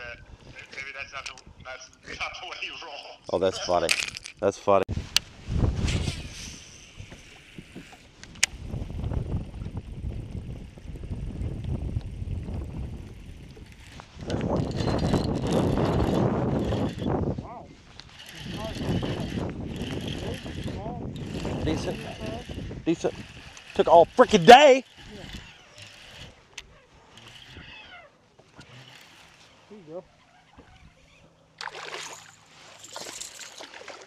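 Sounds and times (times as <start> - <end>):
wind gusting across microphone: 4.9 - 26.4.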